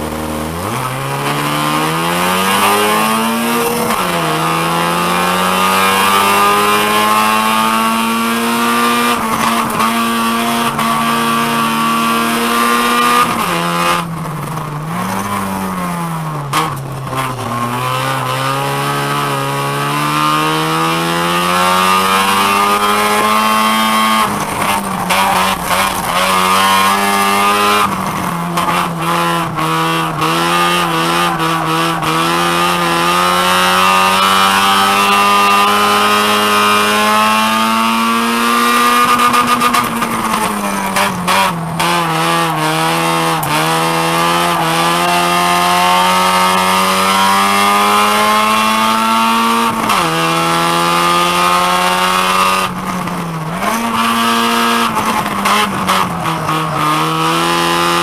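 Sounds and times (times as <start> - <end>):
race car engine revving: 0.0 - 58.0.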